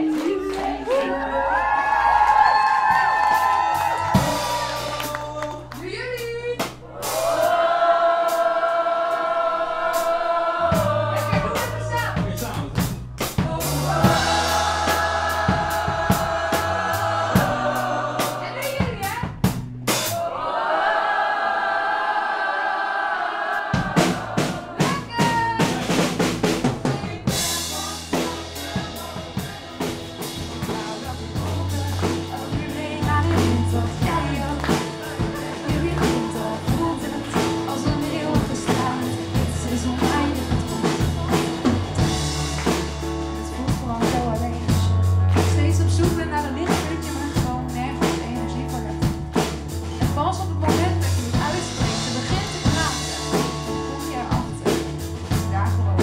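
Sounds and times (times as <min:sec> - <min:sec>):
bass line: 0:00.0 - 0:20.2, 0:23.7 - 0:56.0
drum kit playing: 0:01.8 - 0:20.4, 0:23.4 - 0:56.0.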